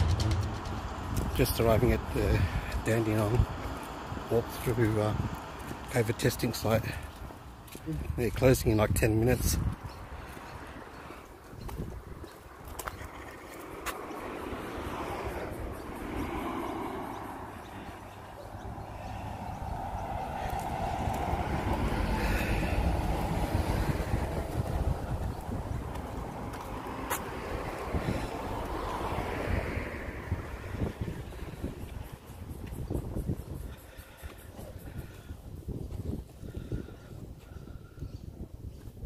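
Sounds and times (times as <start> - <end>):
vehicle passing by: 0.0 - 5.9, 12.9 - 32.5
wind rumble on microphone: 0.0 - 5.9, 6.8 - 39.0.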